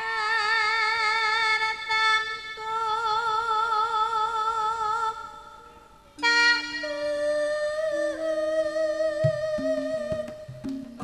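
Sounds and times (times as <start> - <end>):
long held instrumental notes: 6.2 - 11.0.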